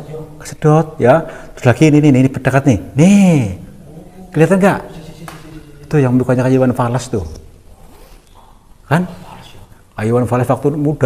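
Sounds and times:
man speaking: 0.0s - 7.5s, 8.8s - 11.0s
faint background noise: 0.0s - 11.0s.

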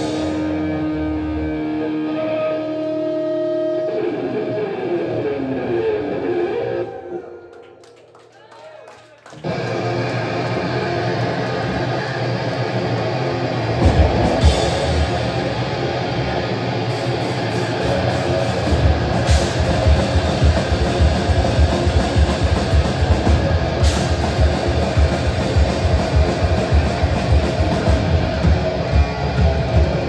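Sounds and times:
distorted electric guitars and bass: 0.0s - 7.3s, 9.4s - 30.0s.

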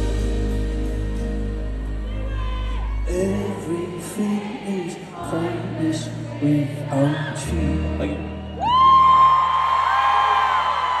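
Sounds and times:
pop ballad chord in an arena: 0.0s - 11.0s
crowd screaming: 8.1s - 11.0s.

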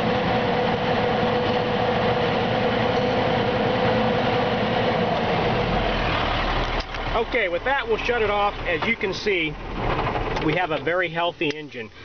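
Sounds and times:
diesel truck engine revving steadily: 0.0s - 10.6s.

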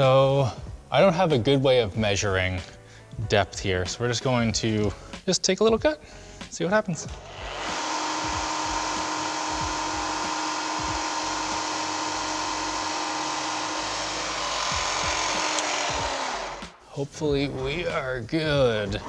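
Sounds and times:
milling machine spindle whirring: 7.1s - 16.8s.

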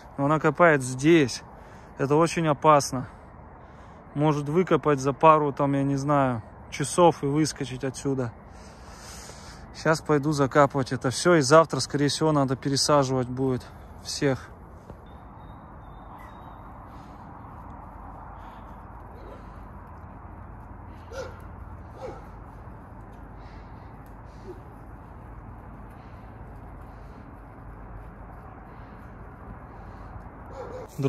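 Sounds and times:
steady low hum: 8.3s - 31.0s
faint animal calls: 15.1s - 17.4s, 18.3s - 19.8s, 20.8s - 22.6s, 23.4s - 25.3s, 28.7s - 31.0s.

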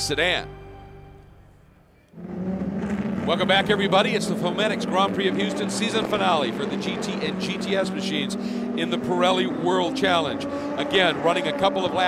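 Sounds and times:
background music: 0.0s - 2.1s
race car engines droning: 0.0s - 12.0s.

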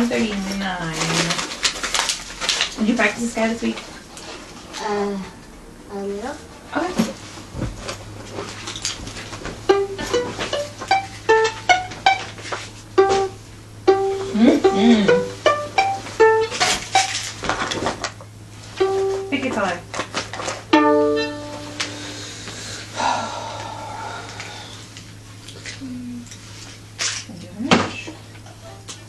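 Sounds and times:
violin plucked notes: 9.7s - 17.3s, 18.8s - 19.9s, 20.7s - 22.2s.

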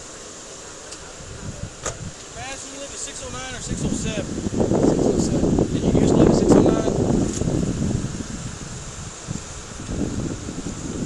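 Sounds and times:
wind noise on microphone: 1.0s - 11.0s.

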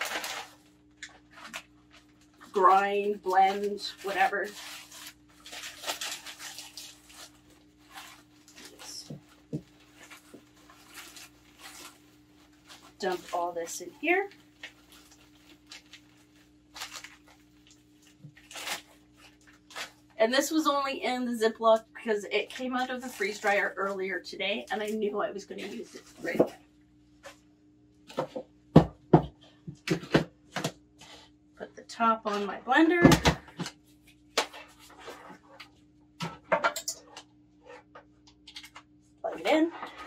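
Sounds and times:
plastic bag crinkling: 0.0s - 20.6s, 22.3s - 24.0s.

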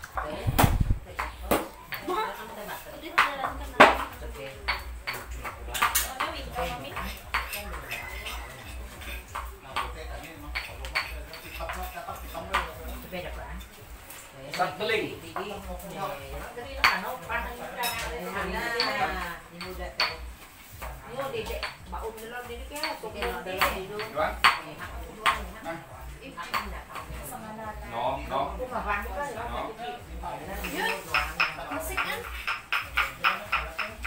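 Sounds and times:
background chatter: 0.0s - 34.0s
utensils against bowls: 5.1s - 13.8s.

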